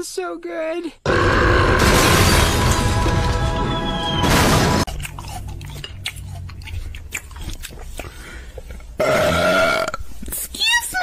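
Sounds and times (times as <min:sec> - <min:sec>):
woman burping: 0:09.0 - 0:10.0.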